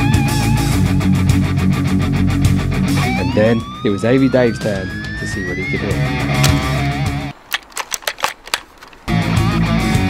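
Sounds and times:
rock music with electric guitar: 0:00.0 - 0:07.4, 0:09.0 - 0:10.0
airsoft gun clicks: 0:06.4 - 0:09.2.

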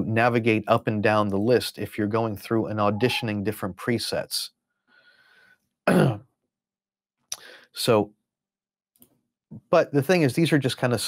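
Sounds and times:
man clearing throat: 0:05.9 - 0:06.2.

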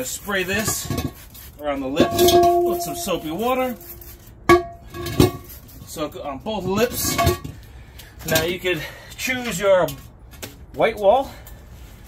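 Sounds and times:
metal wheel rim knocking on concrete: 0:01.9 - 0:05.5.

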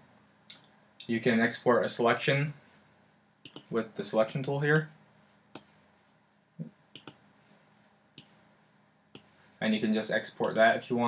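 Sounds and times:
computer mouse clicking: 0:03.4 - 0:03.7, 0:06.9 - 0:07.2, 0:10.4 - 0:10.7.

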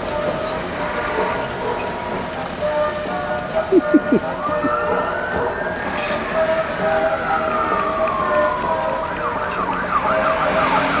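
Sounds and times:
vehicle siren wailing and yelping: 0:03.5 - 0:11.0.

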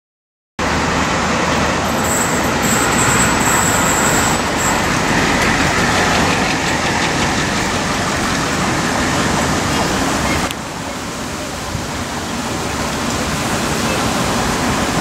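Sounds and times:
rushing vehicle noise: 0:00.6 - 0:15.0.

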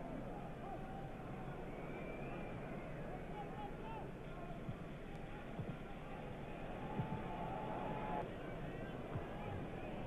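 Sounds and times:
muffled stadium crowd noise: 0:00.0 - 0:10.0.

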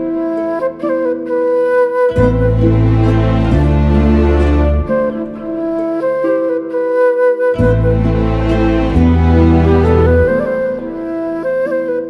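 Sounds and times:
flute melody: 0:00.0 - 0:12.0.

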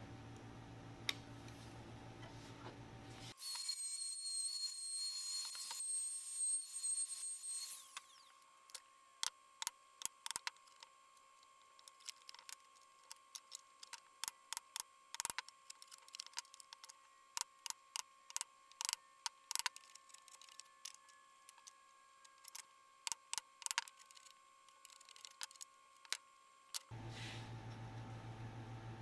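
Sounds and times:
faint steady hum: 0:00.0 - 0:29.0.

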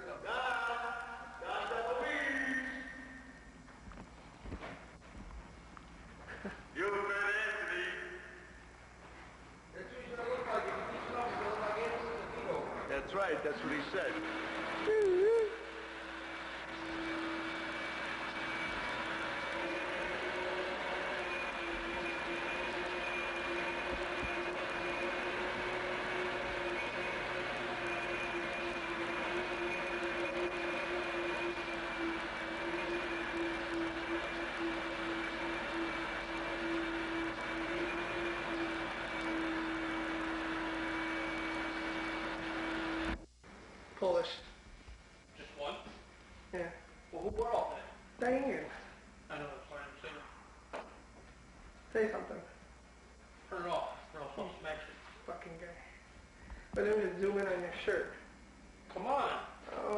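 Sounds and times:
faint high whine: 0:00.0 - 0:59.9
machine drone with low hum: 0:10.5 - 0:43.6.

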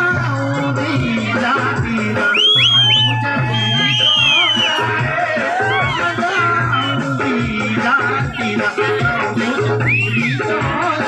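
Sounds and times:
loud live music through speakers: 0:00.0 - 0:11.0.

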